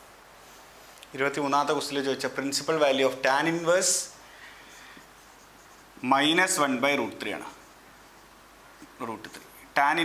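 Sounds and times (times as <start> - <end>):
marker writing on whiteboard: 4.7 - 6.6, 7.3 - 8.2.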